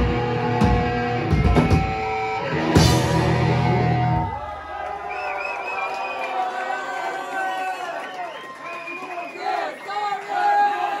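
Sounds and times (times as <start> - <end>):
crowd cheering and whooping: 3.4 - 11.0.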